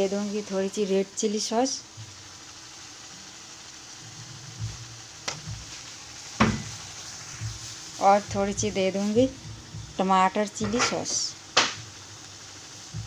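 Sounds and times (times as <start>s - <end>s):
gas burner hissing: 0.0s - 13.0s.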